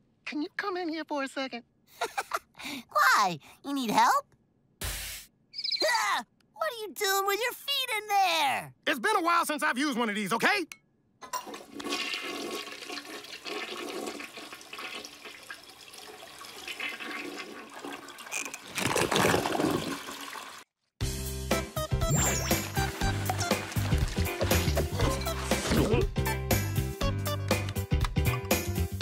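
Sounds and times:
cartoon toilet flushing: 11.2s - 20.7s, 22.0s - 26.2s
upbeat background music: 21.0s - 29.0s.

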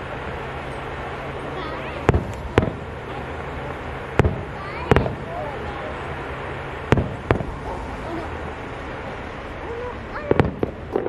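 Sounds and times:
fireworks shells bursting: 0.0s - 11.0s.

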